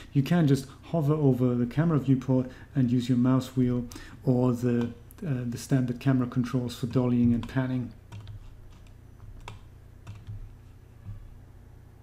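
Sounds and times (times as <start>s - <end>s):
low steady hum: 0.0s - 12.0s
computer clicks: 7.2s - 10.5s.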